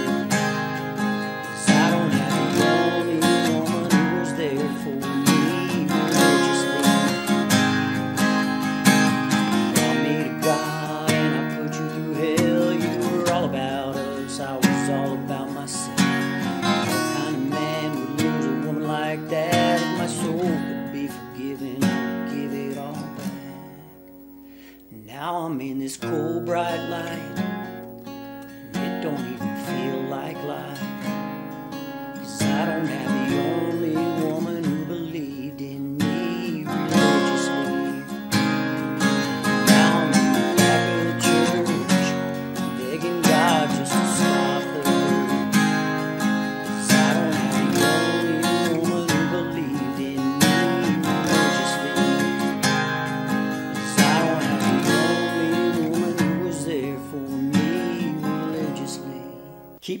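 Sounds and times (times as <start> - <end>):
acoustic guitar strumming: 0.0 - 60.0.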